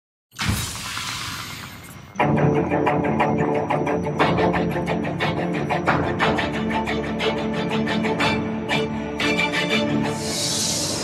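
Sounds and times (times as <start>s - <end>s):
hissing swoosh: 9.8s - 11.0s.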